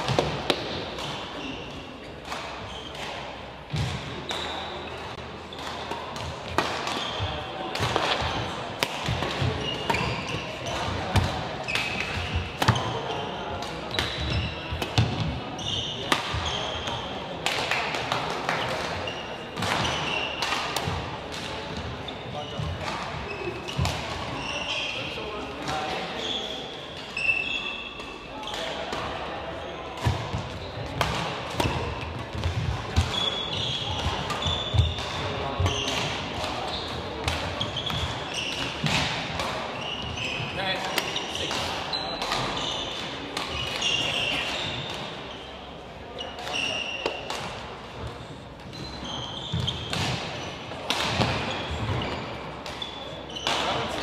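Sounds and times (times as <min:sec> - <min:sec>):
shoes squeaking on court: 0:00.1 - 0:08.5, 0:09.1 - 0:17.2, 0:22.0 - 0:28.9, 0:31.6 - 0:54.0
rackets striking shuttlecock: 0:02.2 - 0:13.0, 0:40.8 - 0:45.2, 0:49.5 - 0:54.0.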